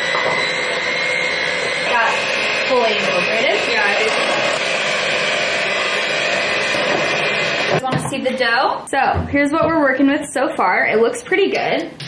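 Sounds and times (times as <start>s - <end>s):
electric hand mixer whining: 0.0s - 8.8s.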